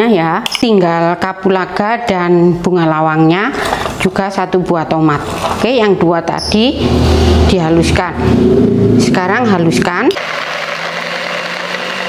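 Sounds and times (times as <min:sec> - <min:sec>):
electric food chopper grinding: 0:10.1 - 0:12.0.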